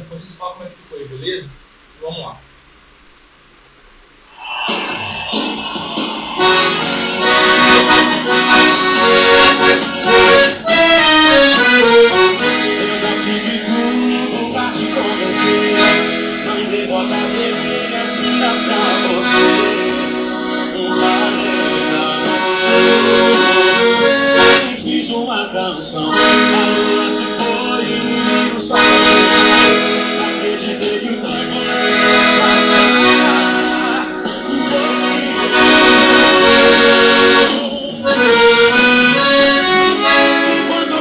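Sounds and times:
piano accordion playing melody: 6.4 - 25.2, 25.9 - 41.0.

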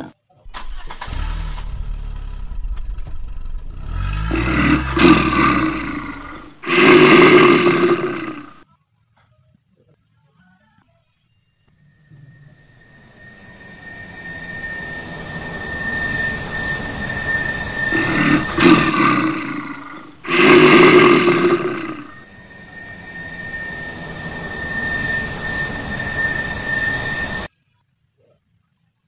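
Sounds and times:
animal growling roar: 3.8 - 8.6, 15.4 - 27.5.

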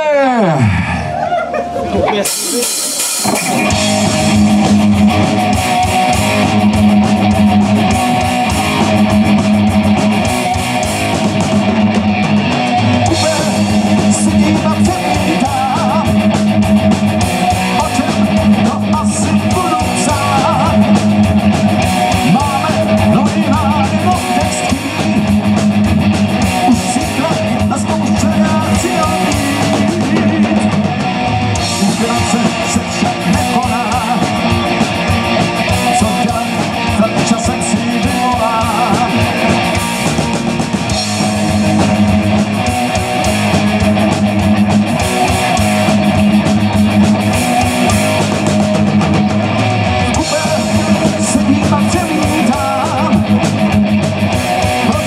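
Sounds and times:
rock band playing: 0.0 - 55.0.

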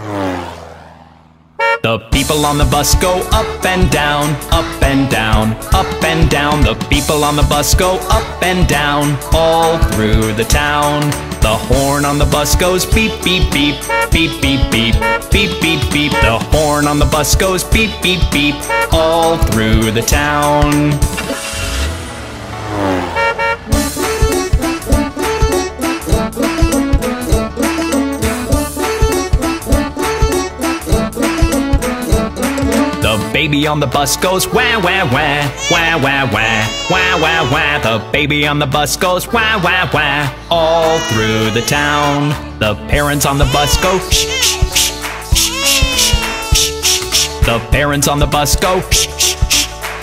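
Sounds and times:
cartoon vehicle passing by: 0.0 - 5.5, 20.0 - 27.3, 34.3 - 38.1
short horn toots: 1.6 - 2.1, 16.0 - 16.5, 22.8 - 24.5
cartoon bus horn toot: 1.6 - 3.4, 13.3 - 22.0, 22.6 - 32.2, 35.2 - 38.2, 39.4 - 47.6
song music: 1.6 - 50.0
cartoon tone sliding down: 35.6 - 37.9, 43.4 - 47.4.

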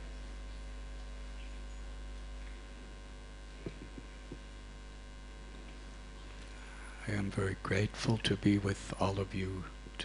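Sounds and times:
electrical mains hum: 0.0 - 10.0
soft knocks on microphone: 3.6 - 4.5.

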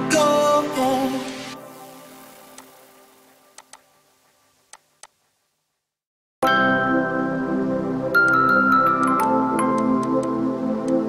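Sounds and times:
background music: 0.0 - 4.2, 6.4 - 11.0
faint sharp clicks: 3.6 - 3.9.

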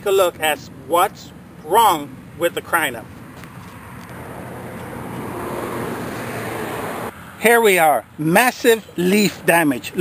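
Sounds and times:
distant vehicle passing: 1.3 - 8.2.

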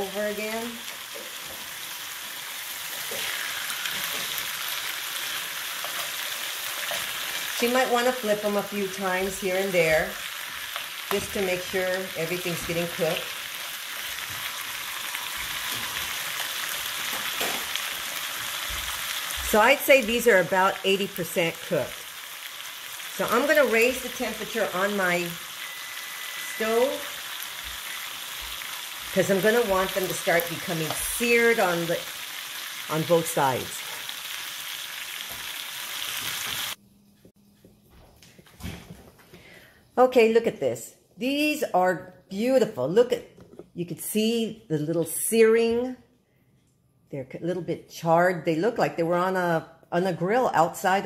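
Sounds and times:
meat sizzling in a frying pan: 0.0 - 36.8.

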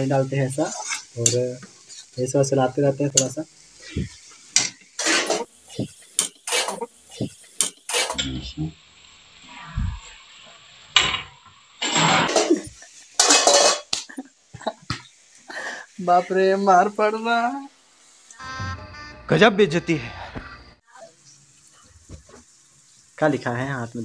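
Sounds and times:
metal spoon clanking in pan: 12.1 - 14.0.

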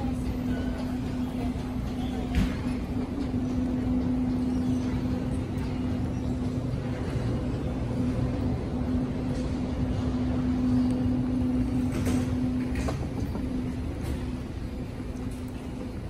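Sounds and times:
mechanical hum: 0.0 - 16.0.

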